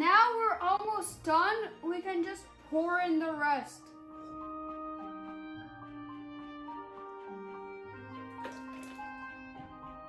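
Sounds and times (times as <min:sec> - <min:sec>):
background music with held notes: 0:00.0 - 0:10.0
batter pouring into a bowl: 0:08.3 - 0:09.1.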